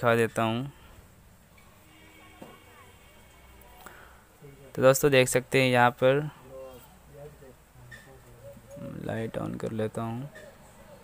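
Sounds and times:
faint human voice murmuring: 6.3 - 9.1.

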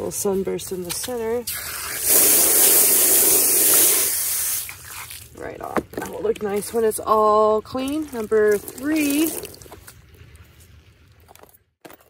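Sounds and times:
hose nozzle spraying water: 0.1 - 10.7.

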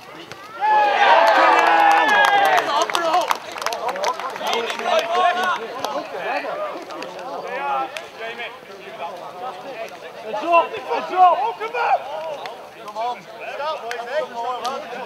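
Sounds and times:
men shouting and cheering: 0.6 - 15.0.

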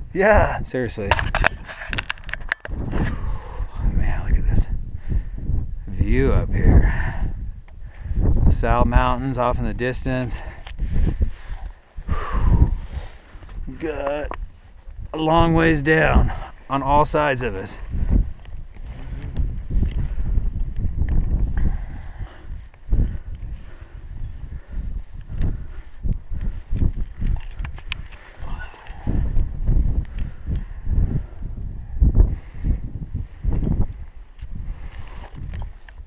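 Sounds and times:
wind buffeting microphone: 0.0 - 36.0
climbing hardware clicks: 26.7 - 29.0.

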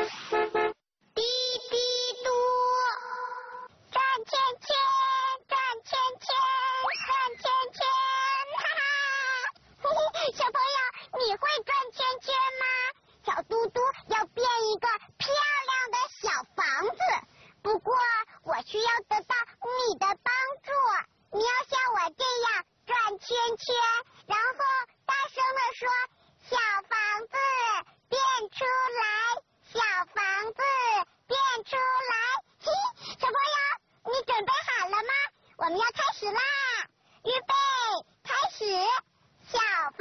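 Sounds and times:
high cartoon voice singing: 1.2 - 29.2.

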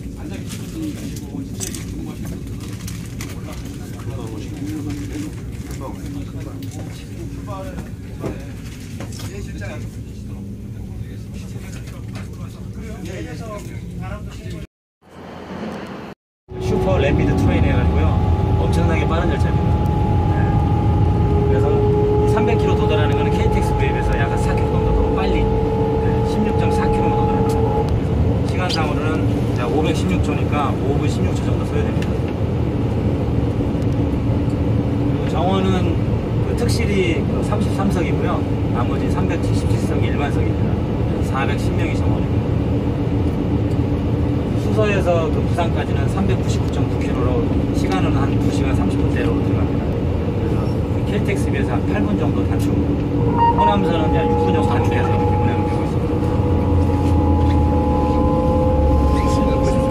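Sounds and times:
train rumble from inside carriage: 0.0 - 14.6, 15.2 - 59.9
people talking: 0.0 - 14.7, 16.6 - 20.8, 21.4 - 27.8, 28.4 - 32.1, 35.2 - 42.3, 44.6 - 59.9
faint steady hum: 16.6 - 29.7, 51.4 - 59.9.

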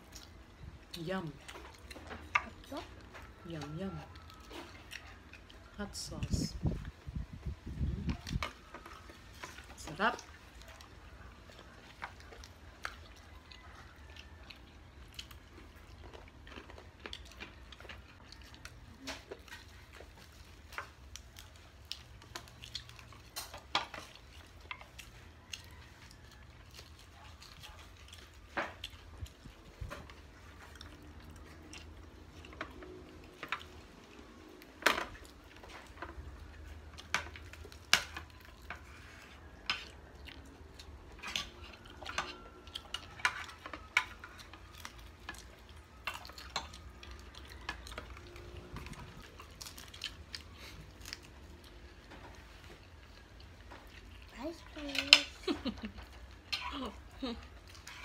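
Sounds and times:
faint chewing: 0.0 - 58.0.

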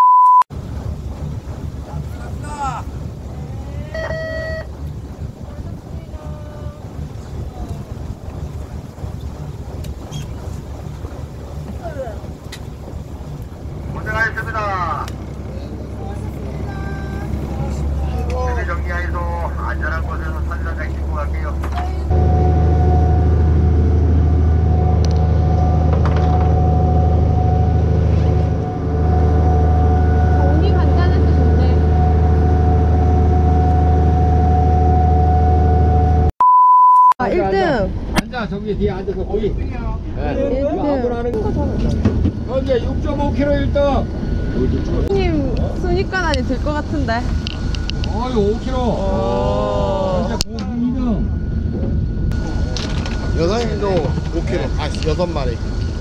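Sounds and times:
short beep: 0.0 - 0.5, 3.9 - 4.7, 33.3 - 37.2
high whine: 0.0 - 39.6, 41.4 - 56.0
boat engine running: 0.5 - 36.3, 37.2 - 56.0
voices: 5.4 - 8.0, 13.9 - 22.2, 30.2 - 32.1, 37.2 - 51.4.

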